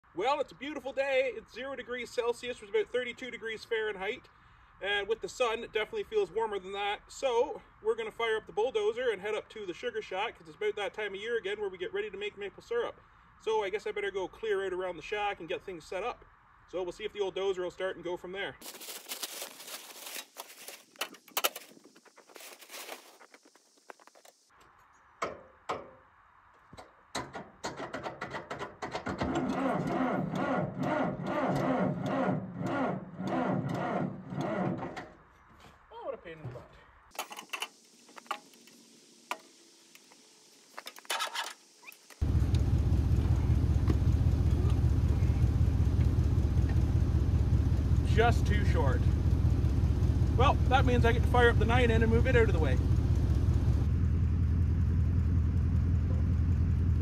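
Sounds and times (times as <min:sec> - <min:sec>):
engine cranking on starter: 0:29.0 - 0:35.0, 0:40.9 - 0:46.1
loud engine drone: 0:42.2 - 0:57.0.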